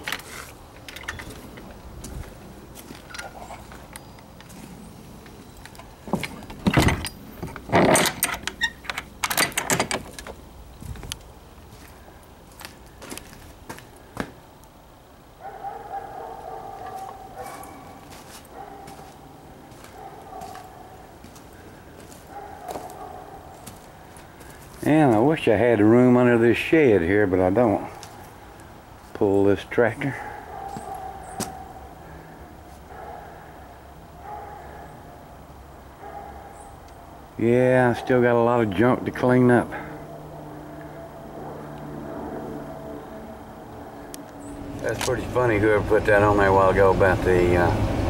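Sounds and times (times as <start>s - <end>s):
steady hum: 0.0s - 48.0s
knocks and clatter: 6.1s - 10.4s.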